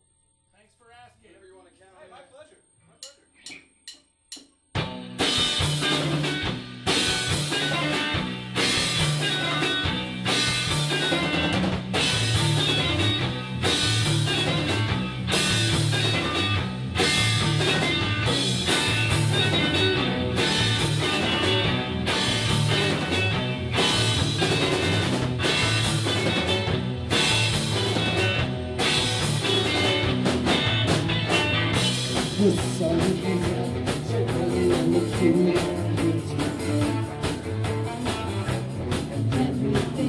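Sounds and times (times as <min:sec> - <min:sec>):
drumsticks clicking: 0:03.0 - 0:04.6
rock band playing: 0:04.8 - 0:40.0.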